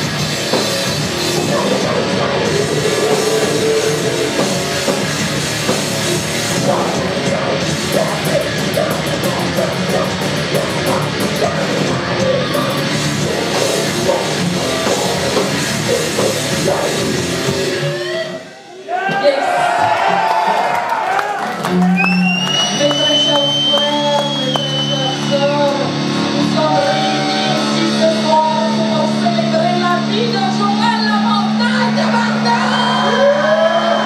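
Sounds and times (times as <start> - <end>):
metal band playing live: 0.0 - 18.5, 22.9 - 34.0
low drone: 0.1 - 18.2.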